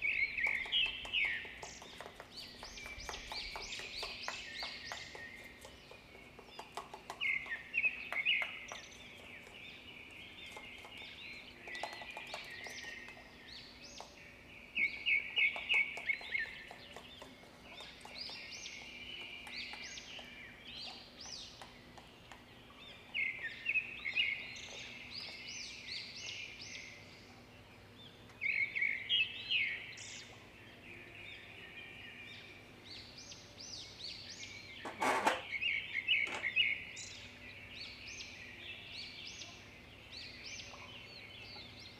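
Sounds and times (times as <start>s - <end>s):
small birds chirping: 0.0s - 41.9s.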